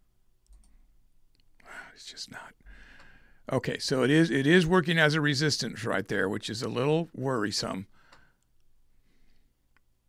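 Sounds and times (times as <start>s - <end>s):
soft breath: 1.6s - 3.5s, 7.9s - 9.7s.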